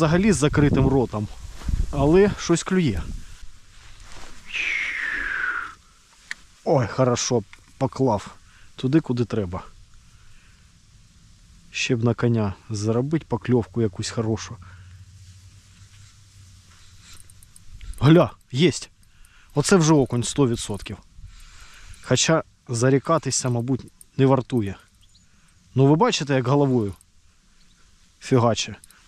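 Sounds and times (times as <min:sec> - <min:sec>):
wind on microphone: 0:00.2 - 0:03.4
steady low rumble: 0:05.5 - 0:29.0
faint high ticks: 0:09.9 - 0:10.7, 0:15.7 - 0:29.0.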